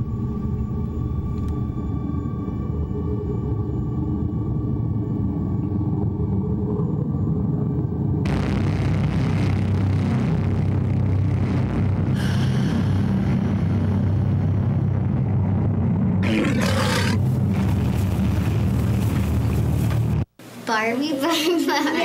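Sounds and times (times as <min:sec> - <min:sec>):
low rumbling drone: 0:00.0 - 0:20.3.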